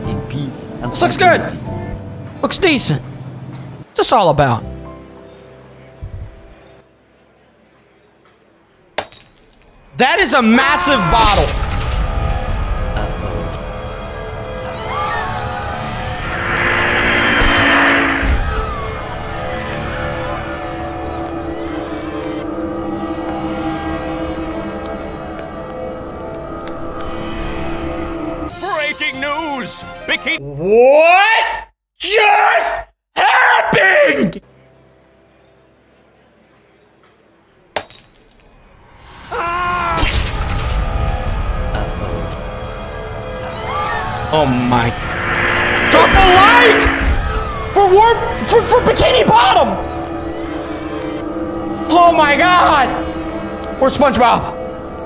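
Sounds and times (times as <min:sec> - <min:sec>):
glass bottle clinking on ground: 0:09.0 - 0:09.8, 0:37.8 - 0:38.5.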